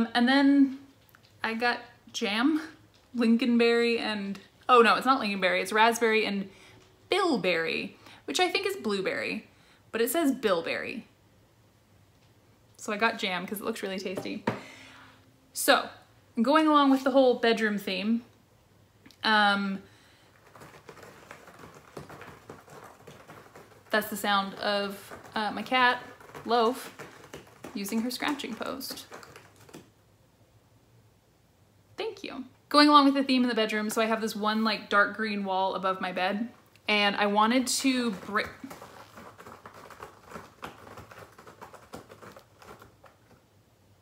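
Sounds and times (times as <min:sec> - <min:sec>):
speech: 0:00.0 - 0:00.8, 0:01.4 - 0:06.5, 0:07.1 - 0:11.1, 0:12.8 - 0:14.4, 0:15.6 - 0:18.3, 0:23.9 - 0:26.9, 0:27.8 - 0:29.1, 0:32.0 - 0:38.7
cat scratching a post: 0:20.3 - 0:29.9, 0:37.8 - 0:43.4.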